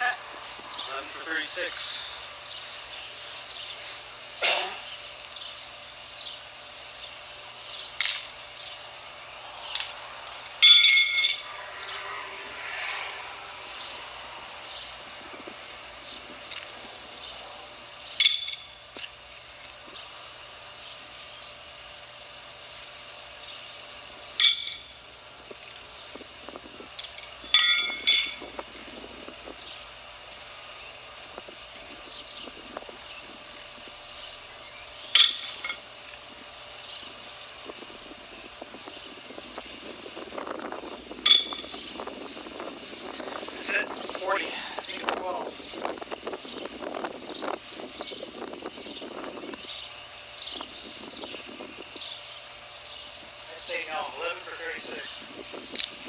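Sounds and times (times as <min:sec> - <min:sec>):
steel horseshoes clanking: 0:09.8 - 0:11.4, 0:24.4 - 0:24.9, 0:27.0 - 0:28.4, 0:35.2 - 0:35.8, 0:41.2 - 0:41.7.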